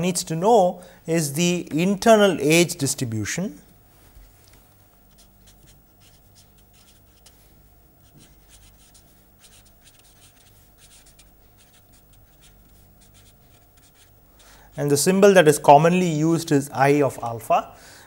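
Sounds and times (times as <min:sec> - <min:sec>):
low electrical hum: 0:00.0 - 0:18.0
marker pen writing on paper: 0:05.1 - 0:07.4, 0:08.0 - 0:14.5.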